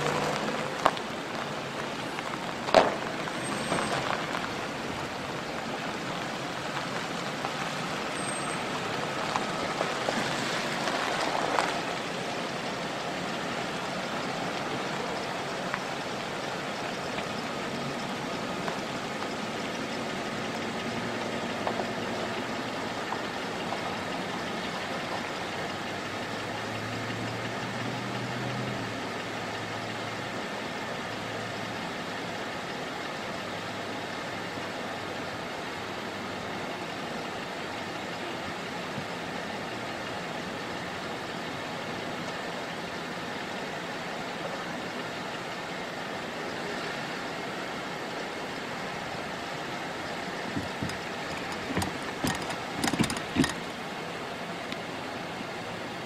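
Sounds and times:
car engines idling and moving: 0.0 - 56.0
outdoor noise: 0.0 - 56.0.

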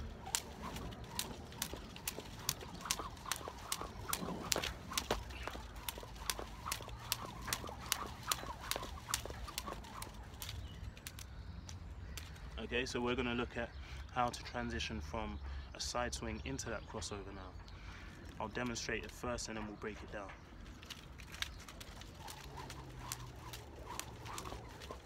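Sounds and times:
skipping rope slapping paving: 0.0 - 12.6, 20.8 - 25.0.

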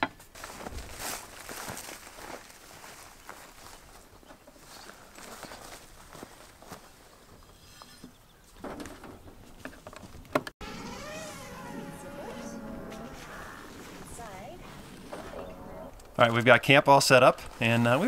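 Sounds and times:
flying insect buzzing: 10.6 - 16.0.

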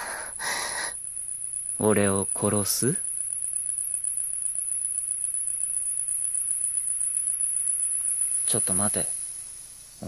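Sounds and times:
faint low hum: 0.0 - 10.0
insects trilling: 0.0 - 10.0.

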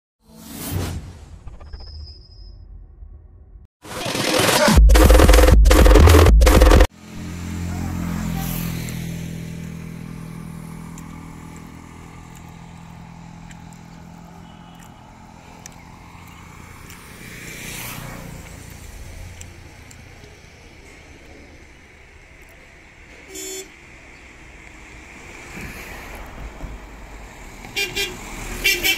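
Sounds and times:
loud music: 3.8 - 6.9
road vehicles passing: 6.9 - 28.9.

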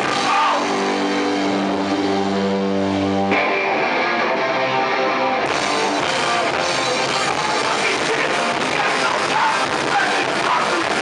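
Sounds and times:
distorted electric guitar: 0.0 - 11.0
hardcore band playing live: 0.0 - 11.0.

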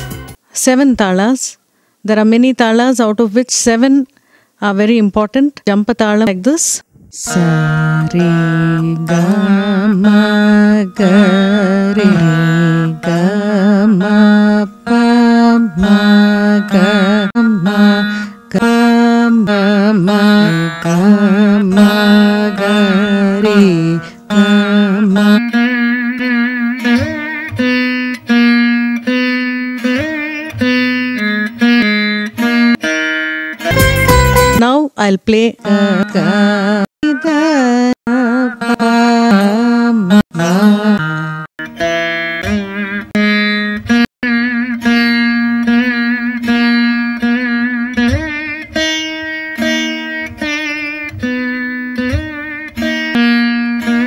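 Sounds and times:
plucked veena melody: 6.5 - 34.7, 35.4 - 54.0.

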